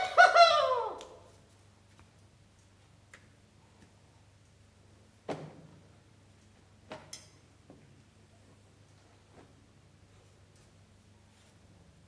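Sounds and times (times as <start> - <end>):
man whooping: 0.0 - 1.3.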